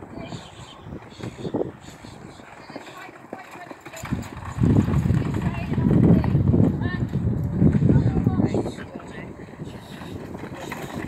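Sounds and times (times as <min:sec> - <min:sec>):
horse team hoofbeats: 0:00.2 - 0:11.0.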